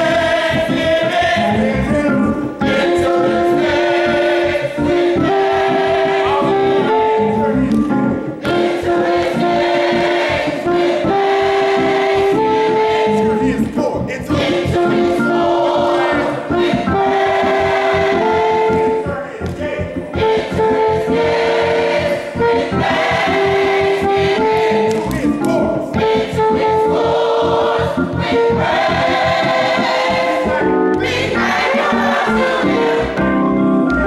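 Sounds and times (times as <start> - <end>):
gospel choir singing: 0.0 - 34.0.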